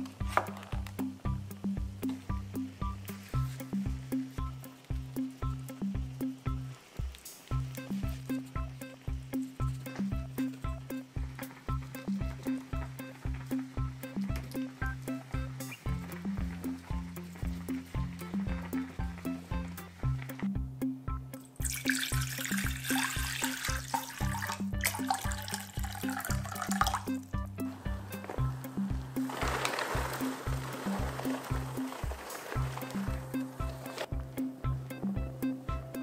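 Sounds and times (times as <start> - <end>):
background music with steady beat: 0.0 - 36.0
water poured into saucepan: 21.5 - 27.3
water splash: 21.6 - 27.2.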